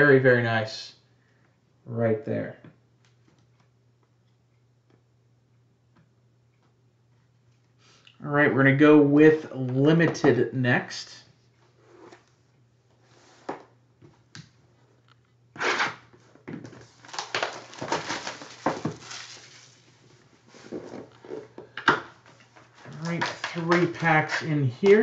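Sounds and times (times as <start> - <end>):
plastic shrink-wrap tearing and crinkling: 16.8 - 20.0, 22.8 - 25.0.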